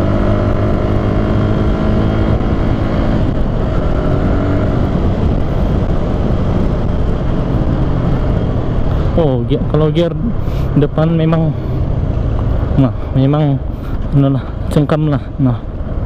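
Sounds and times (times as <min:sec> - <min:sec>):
motorcycle engine running: 0:00.0 - 0:16.0
wind and road noise: 0:00.0 - 0:16.0.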